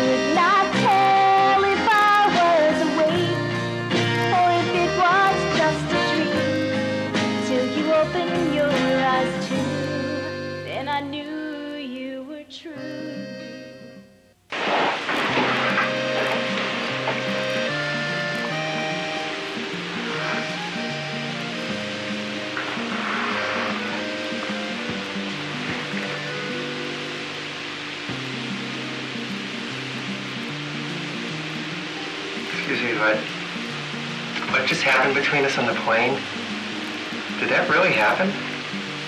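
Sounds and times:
steady hiss: 0:00.0 - 0:13.6, 0:14.3 - 0:39.0
slow background music: 0:00.0 - 0:14.4, 0:15.1 - 0:39.0.

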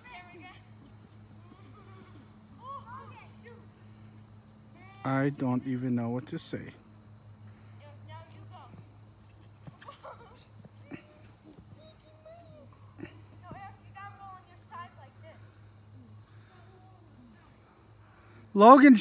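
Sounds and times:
distant children shouting: 0:00.0 - 0:05.7, 0:09.6 - 0:17.7
steady low hum: 0:00.0 - 0:18.6.

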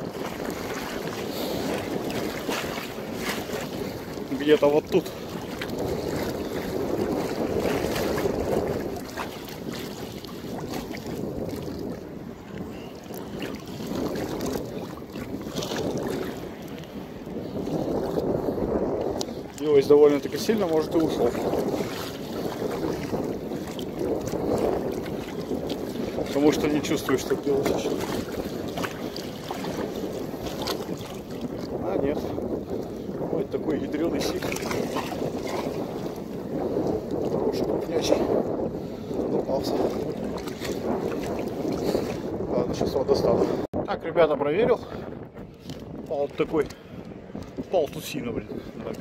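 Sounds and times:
sea water washing and sloshing: 0:00.0 - 0:43.8, 0:44.5 - 0:49.0
wind buffeting microphone: 0:00.0 - 0:49.0.

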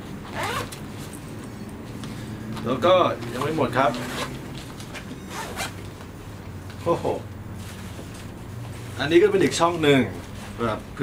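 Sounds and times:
backpack zipper being pulled: 0:00.2 - 0:00.8, 0:04.0 - 0:04.4, 0:05.3 - 0:05.8.

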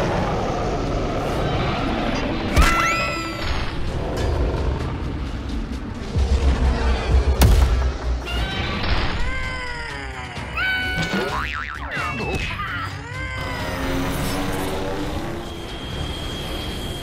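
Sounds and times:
background music: 0:02.5 - 0:17.0
wobbling cartoon boing: 0:11.1 - 0:12.2.

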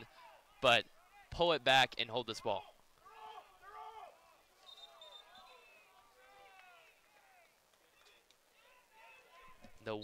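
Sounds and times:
distant players shouting: 0:02.4 - 0:07.6.

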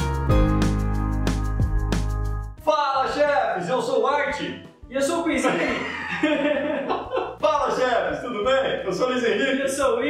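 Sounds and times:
men speaking: 0:02.6 - 0:10.0
men laughing: 0:05.4 - 0:08.0.

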